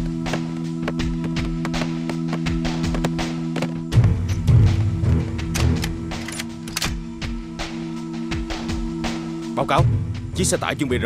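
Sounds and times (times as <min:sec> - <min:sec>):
low music drone: 0:00.0 - 0:10.5.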